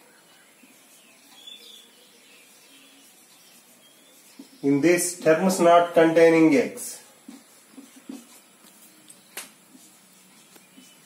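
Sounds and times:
marker writing on whiteboard: 2.4 - 5.6, 7.0 - 11.0.

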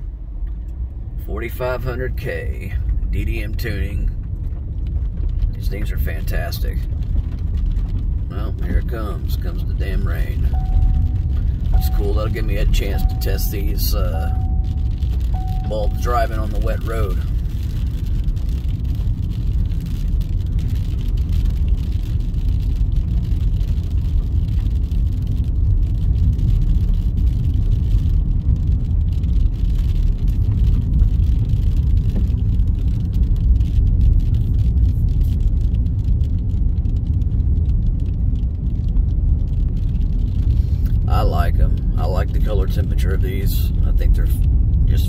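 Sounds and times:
car engine and tyres rumbling: 0.0 - 45.0.

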